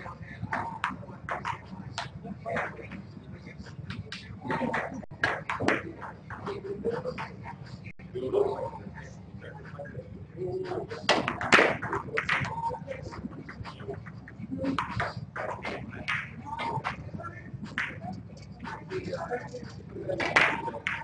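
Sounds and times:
people talking indistinctly: 0.0 - 21.0.

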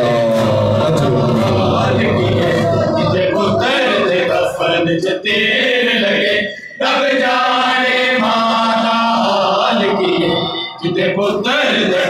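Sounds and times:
men chanting a lament: 0.0 - 12.0.

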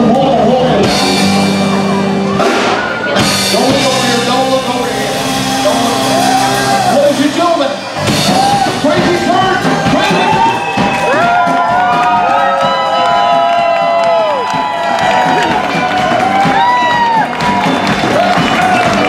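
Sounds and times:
crowd cheering: 0.0 - 19.0
live band playing: 0.0 - 19.0
steady drum beat: 0.0 - 19.0.

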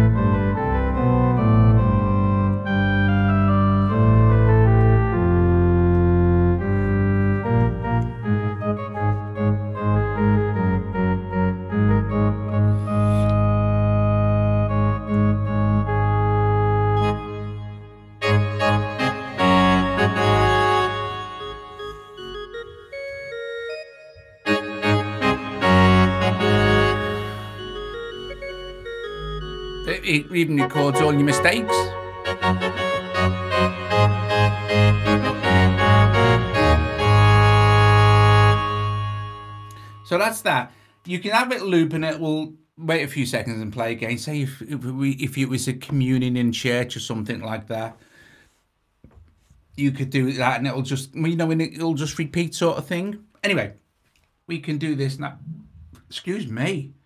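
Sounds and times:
pipe organ chords: 0.0 - 40.8.

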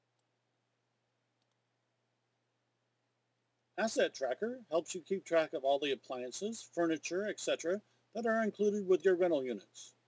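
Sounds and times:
computer mouse clicks: 1.4 - 1.6.

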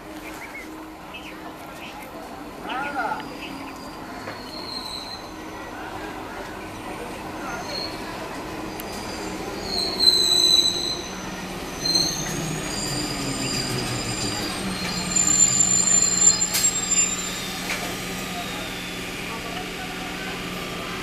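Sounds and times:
train humming and rumbling: 0.0 - 21.0
train wheels and brakes squealing: 2.7 - 6.2, 7.0 - 20.9.

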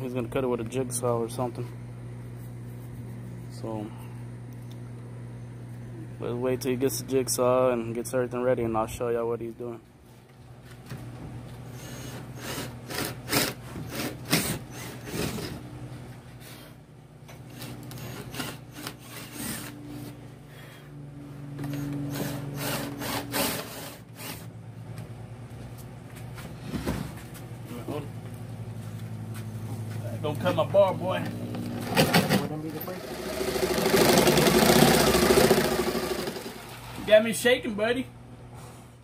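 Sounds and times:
cordless drill boring wood: 11.8 - 15.5, 17.5 - 19.7, 21.6 - 24.5, 32.8 - 36.7.

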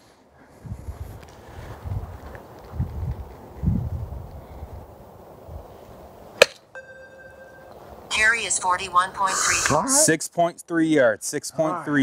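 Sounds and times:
golf club striking ball: 6.4 - 7.3.

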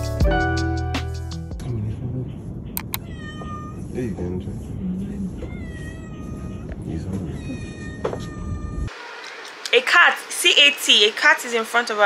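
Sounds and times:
cat meowing: 2.7 - 4.0, 5.2 - 9.0.

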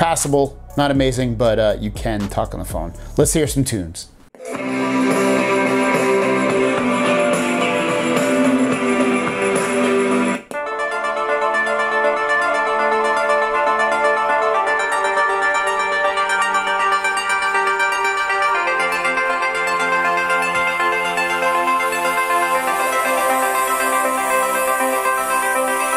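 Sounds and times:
different tune playing: 4.4 - 25.9
guitar music from small speaker: 4.4 - 25.9.

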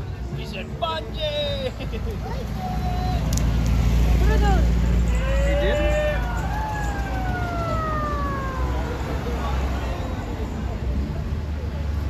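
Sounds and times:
voices and calls: 0.5 - 11.1.

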